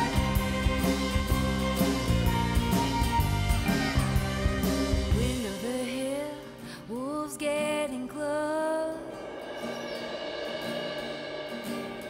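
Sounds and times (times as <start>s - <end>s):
country band instrumental music: 0.0s - 6.3s.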